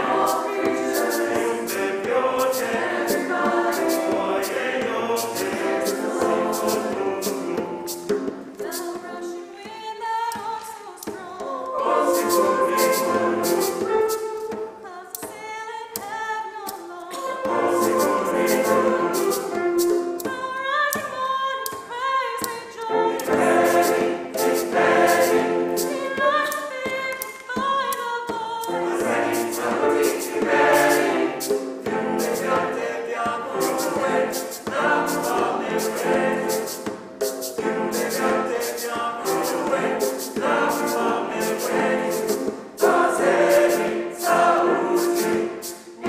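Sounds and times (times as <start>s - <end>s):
mixed choir singing in parts: 0.0s - 8.7s, 11.6s - 14.6s, 17.1s - 20.3s, 22.9s - 26.7s, 28.6s - 46.0s
quick steady tapping beat: 0.0s - 14.6s, 15.2s - 46.0s.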